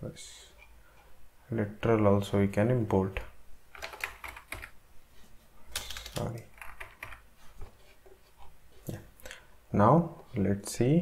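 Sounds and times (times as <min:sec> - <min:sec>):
keyboard keystrokes: 0:03.7 - 0:04.7, 0:05.7 - 0:07.2.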